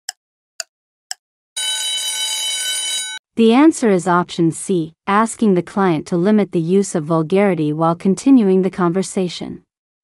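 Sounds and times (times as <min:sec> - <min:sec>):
ringing alarm tone: 0:01.6 - 0:03.2.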